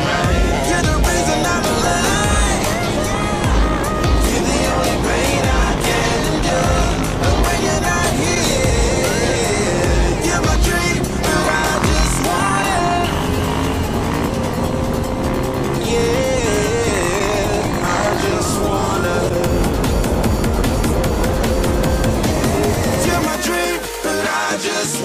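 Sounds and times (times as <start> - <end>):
motorcycle engine running: 0.0 - 24.3
background music: 0.0 - 25.0.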